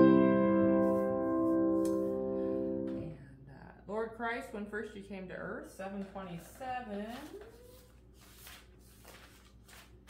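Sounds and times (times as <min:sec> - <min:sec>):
grand piano chord ringing: 0:00.0 - 0:03.2
woman speaking: 0:02.9 - 0:07.8.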